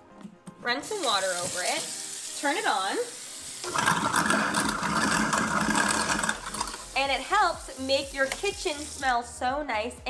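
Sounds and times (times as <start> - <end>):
tap water flowing: 0.9 - 9.1
garbage disposal grinding: 3.6 - 7.1.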